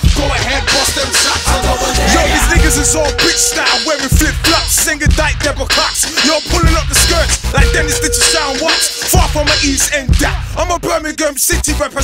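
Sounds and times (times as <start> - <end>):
rapping over heavy bass beat: 0.0 - 12.0.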